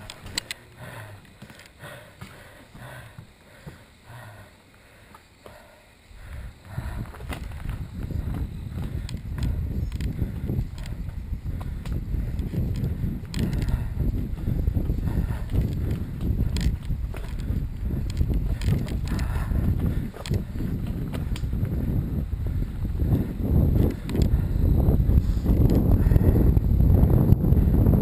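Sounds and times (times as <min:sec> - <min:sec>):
bike clicks and rattles: 0:00.0 - 0:01.8, 0:06.9 - 0:27.9
wind buffeting microphone: 0:06.2 - 0:28.0
bike tyres rumbling on dirt: 0:06.3 - 0:28.0.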